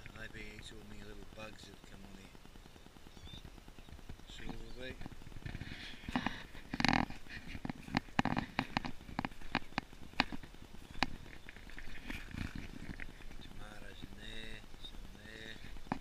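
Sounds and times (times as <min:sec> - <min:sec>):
rustling through plant leaves: 0:00.0 - 0:16.0.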